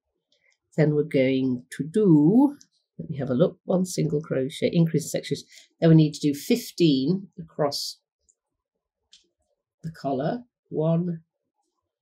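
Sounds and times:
person speaking: 0.8s - 8.0s, 9.9s - 11.2s.

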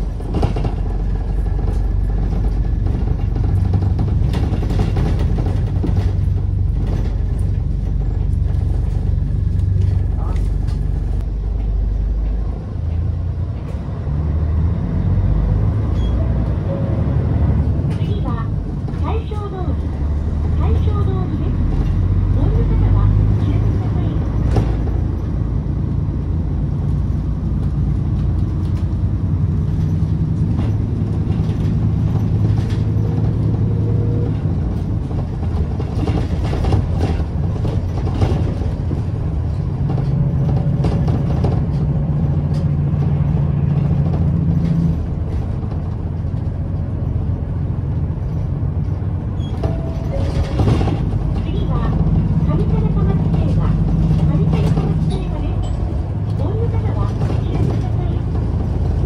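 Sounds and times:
bus engine drone: 0.0s - 59.0s
road noise: 0.0s - 59.0s.

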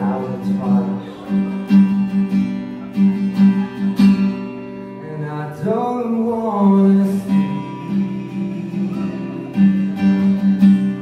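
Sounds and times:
man singing: 0.0s - 1.6s, 4.9s - 11.0s
acoustic guitar strumming chords: 0.0s - 11.0s.

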